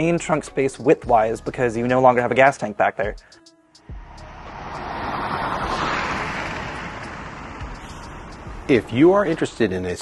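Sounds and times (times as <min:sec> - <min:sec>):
car passing by at speed: 0:03.9 - 0:09.6.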